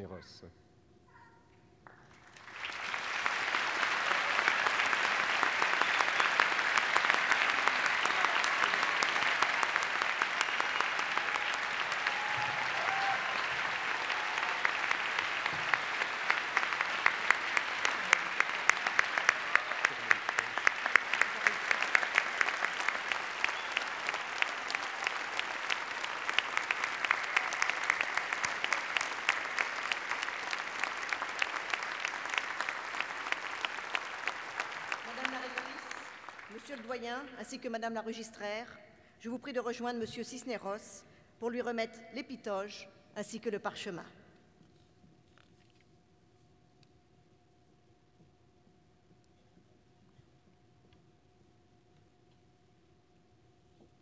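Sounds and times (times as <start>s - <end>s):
large audience applauding: 1.9s - 37.4s.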